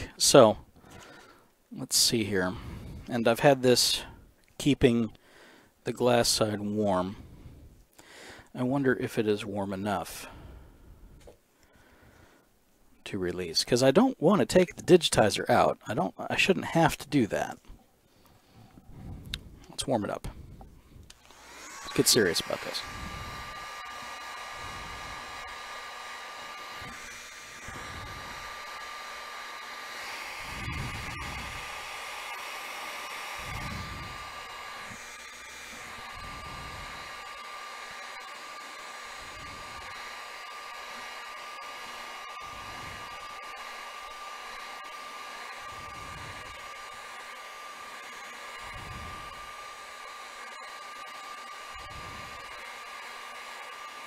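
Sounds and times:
heat gun fan whine: 1.9 - 12.4, 18.2 - 54.0.

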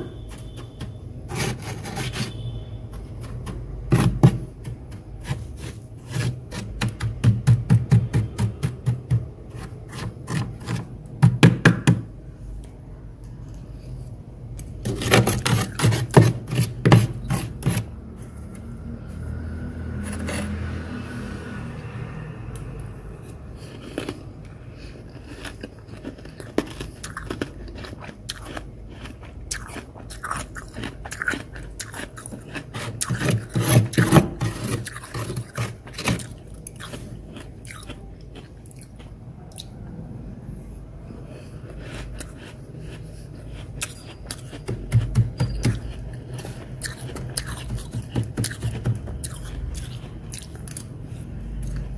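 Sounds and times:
frost being bitten and chewed: 23.6 - 39.8, 41.6 - 51.0.

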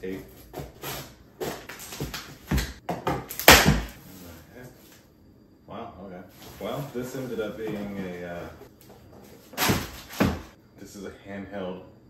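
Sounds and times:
packing tape tearing from cardboard: 3.3 - 4.0, 9.5 - 10.5.

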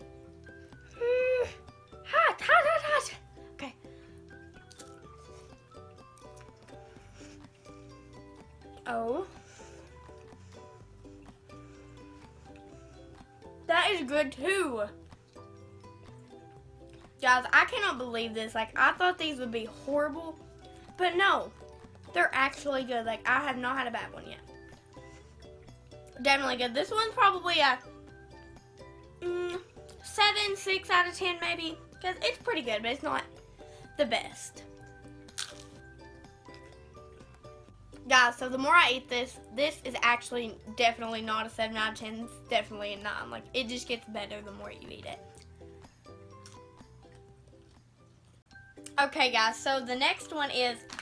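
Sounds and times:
soft keyboard music: 0.0 - 51.0
tortilla chip crunch: 4.6 - 5.0, 35.2 - 35.8, 50.8 - 51.0.

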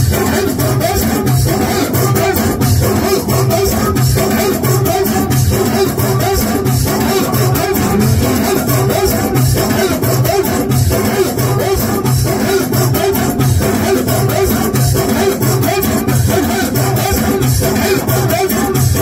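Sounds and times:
amplified live music with bass beat: 0.0 - 19.0.

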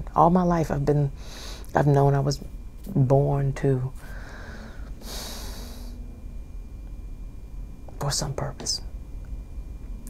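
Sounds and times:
woman breathing: 1.2 - 1.7, 4.0 - 6.1.

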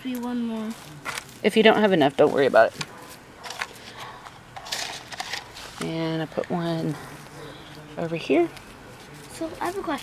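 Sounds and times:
woman speaking: 1.4 - 2.8, 5.8 - 7.1, 8.0 - 8.5.

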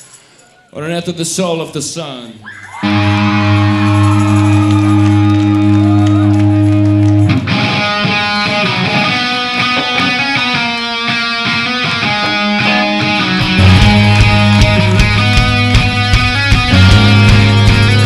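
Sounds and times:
loud electric guitar: 2.6 - 18.0.

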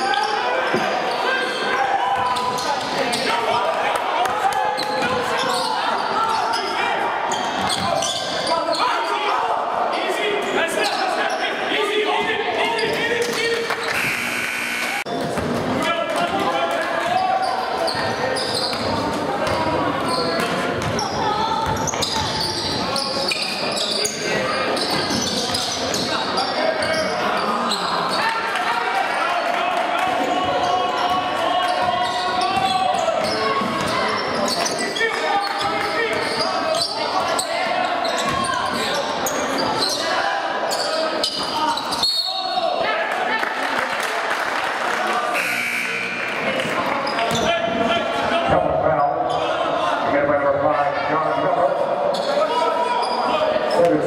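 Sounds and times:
spectators talking: 0.0 - 54.0.

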